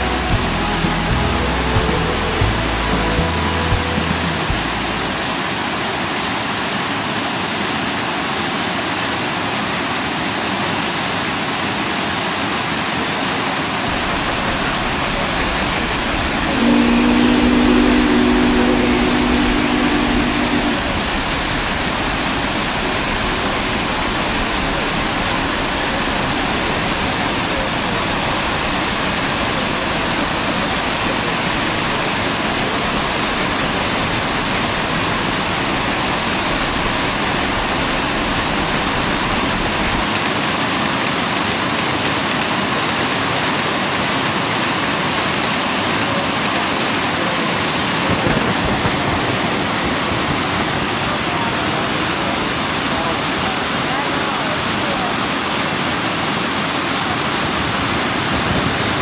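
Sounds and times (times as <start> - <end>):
low steady hum: 0.0 - 5.4, 14.0 - 22.9
waterfall rushing: 0.0 - 59.0.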